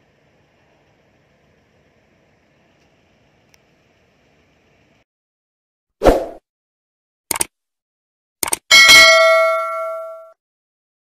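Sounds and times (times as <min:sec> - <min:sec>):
double mouse click: 0:07.3 - 0:07.5
bright bell ding: 0:08.7 - 0:10.4.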